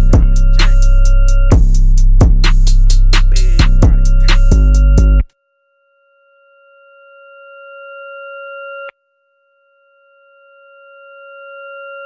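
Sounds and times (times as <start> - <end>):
steady electronic beep tone: 0.0 - 5.3.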